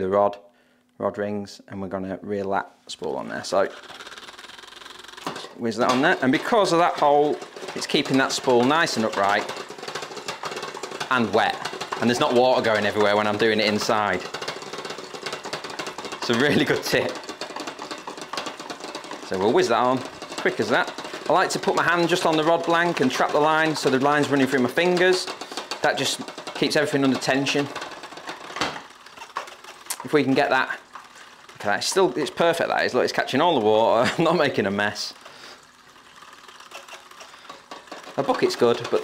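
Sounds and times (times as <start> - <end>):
fishing reel whirring and ticking: 3.5 - 39.0.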